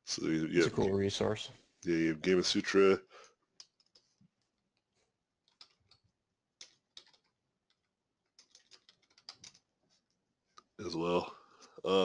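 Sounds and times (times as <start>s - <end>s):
man speaking: 0.0s - 3.2s, 10.8s - 12.0s
computer mouse clicking: 3.6s - 4.2s, 5.4s - 9.6s.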